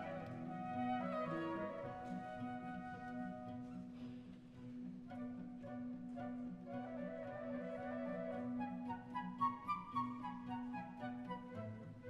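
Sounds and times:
flute melody: 0.0 - 4.0, 5.0 - 12.0.

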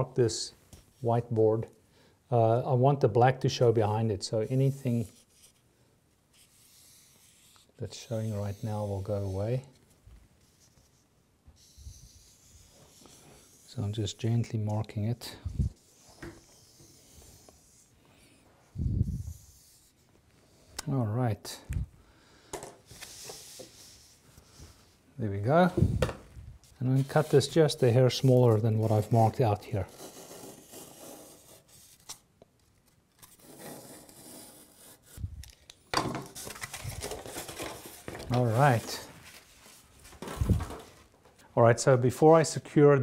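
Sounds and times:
marker pen scratching on board: 15.5 - 17.9, 29.9 - 31.9.

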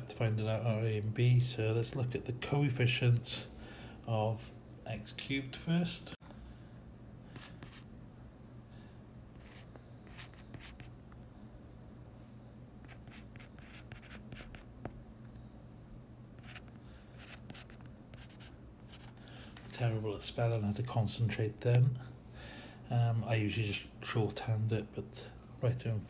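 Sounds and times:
steady low hum: 0.0 - 26.0
handwriting scratching: 7.4 - 7.8, 9.4 - 11.0, 12.8 - 14.7, 16.4 - 19.2.

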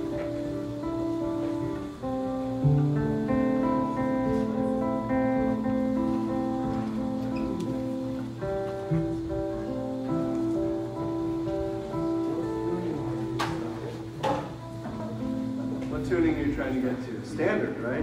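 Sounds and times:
guitar and keyboard chords: 0.0 - 17.1.

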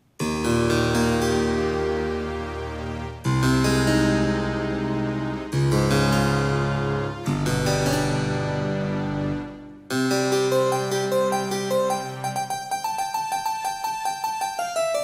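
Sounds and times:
harpsichord and string pad chords: 0.2 - 15.0.

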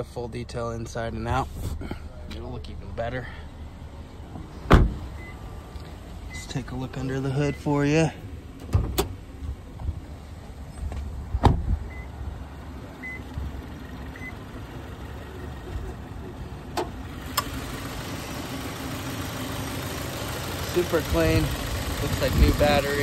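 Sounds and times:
car engine idling: 0.0 - 23.0.

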